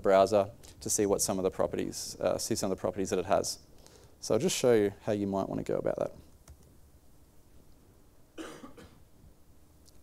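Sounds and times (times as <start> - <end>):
person coughing: 8.4 - 9.0.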